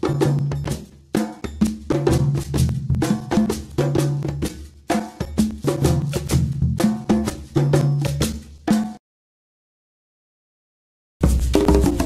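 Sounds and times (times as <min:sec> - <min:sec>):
drum and percussion hits: 0:00.0 - 0:09.0, 0:11.2 - 0:12.0.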